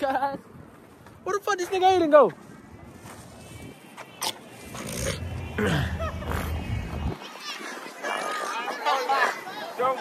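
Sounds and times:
person clearing throat: 4.9 - 6.0.

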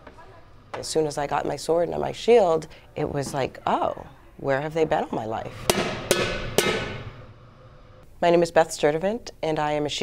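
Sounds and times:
sword striking metal shield: 5.7 - 7.1.

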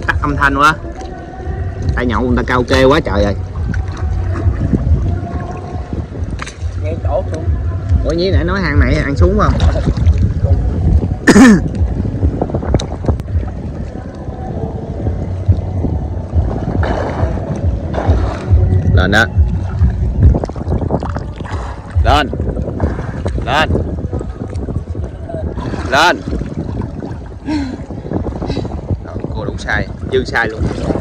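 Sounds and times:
river water splashing: 0.0 - 31.0
wind rumble on microphone: 0.0 - 31.0.

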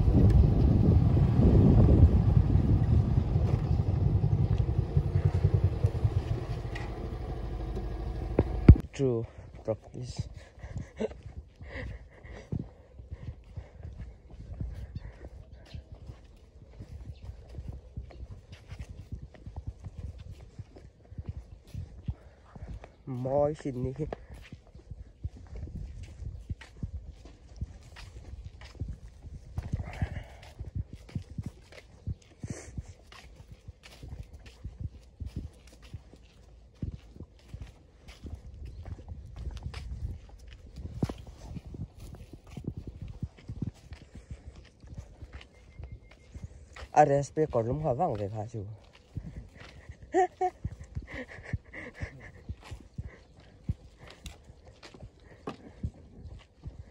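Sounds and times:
low microphone rumble: 0.0 - 8.9
person laughing: 10.3 - 12.5, 49.6 - 53.3
footsteps on hard walkway: 11.2 - 47.0, 48.1 - 56.9.

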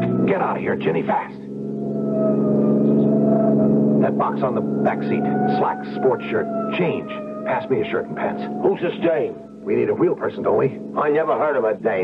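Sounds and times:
car engine speeding off: 0.0 - 12.0.

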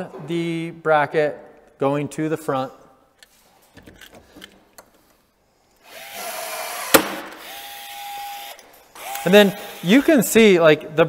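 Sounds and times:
cordless drill drilling metal: 5.8 - 10.5.

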